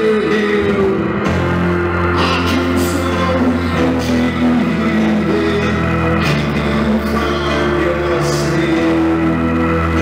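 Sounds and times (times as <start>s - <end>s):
rock band playing slow song: 0.0s - 10.0s.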